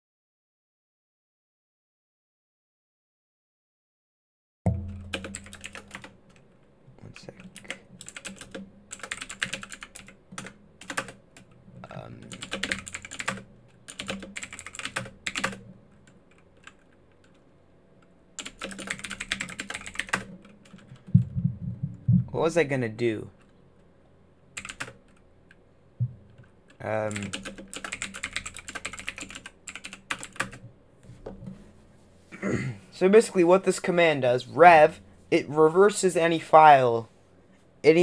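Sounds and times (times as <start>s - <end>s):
computer keyboard typing: 4.8s - 6.5s, 7.2s - 17.4s, 18.4s - 21.3s, 24.6s - 25.2s, 26.4s - 30.6s.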